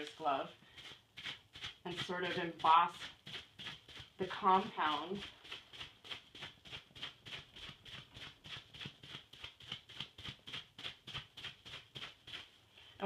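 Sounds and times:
gloved hand patting wet compound: 0:00.0 - 0:13.0.

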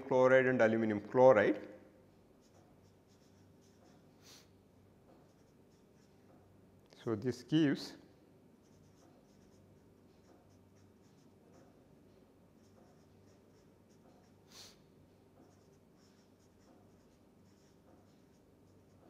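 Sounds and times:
marker writing on paper: 0:02.4 - 0:04.5, 0:05.1 - 0:06.3, 0:08.6 - 0:11.8, 0:12.6 - 0:14.8, 0:15.4 - 0:19.0.

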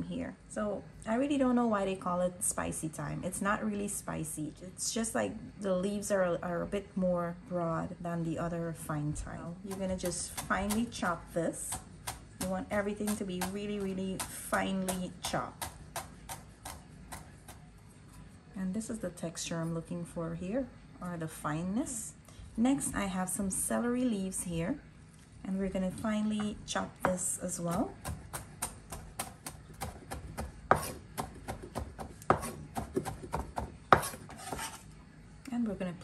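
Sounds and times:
knife chopping on wooden board: 0:09.7 - 0:11.1, 0:11.7 - 0:17.6, 0:26.4 - 0:34.8.

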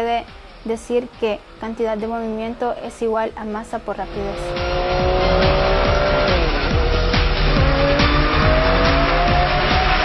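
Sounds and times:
music with steady beat: 0:00.0 - 0:10.0
car engine revving: 0:03.4 - 0:10.0.

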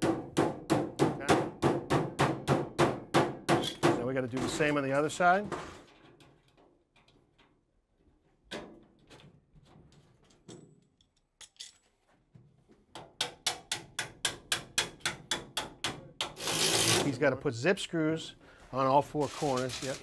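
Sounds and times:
scraping on sheet metal: 0:19.1 - 0:20.0.

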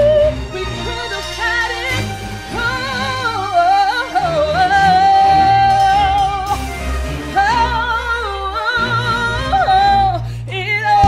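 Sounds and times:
orchestral backing track: 0:00.0 - 0:11.0
woman singing: 0:00.0 - 0:11.0.

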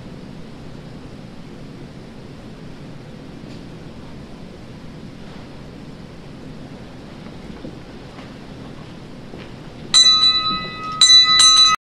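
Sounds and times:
small high-pitched bell ringing: 0:10.0 - 0:11.8.

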